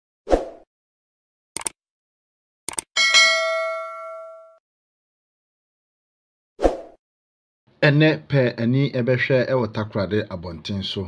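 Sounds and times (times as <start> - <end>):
click: 1.6 - 1.8, 2.7 - 2.9
notification bell ding: 3.0 - 4.6.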